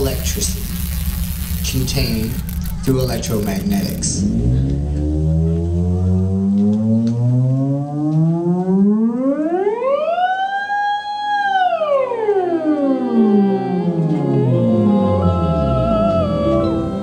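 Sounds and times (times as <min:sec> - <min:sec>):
theremin gliding: 0:00.0 - 0:04.5, 0:08.4 - 0:17.0.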